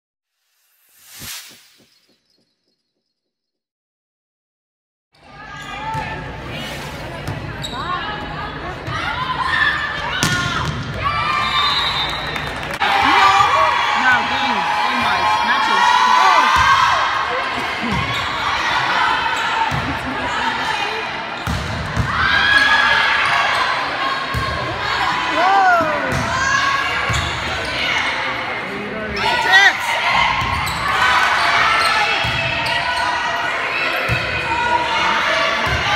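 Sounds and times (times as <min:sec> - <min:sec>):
players calling in echoing hall: 0:05.3 - 0:35.9
sneakers squeaking on floor: 0:07.2 - 0:08.0, 0:27.0 - 0:27.9, 0:30.4 - 0:33.2
crowd murmur: 0:12.5 - 0:21.4.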